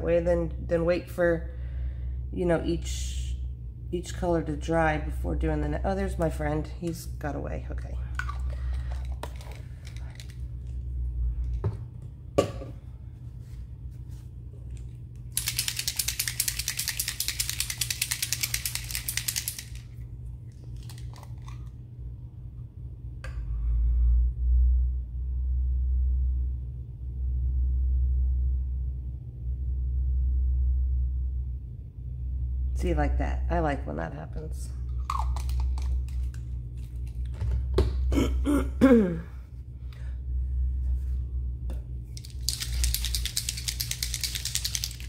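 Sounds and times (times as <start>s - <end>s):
paint bottle rattling: 8.3s - 10.4s, 15.3s - 19.9s, 42.2s - 45.0s.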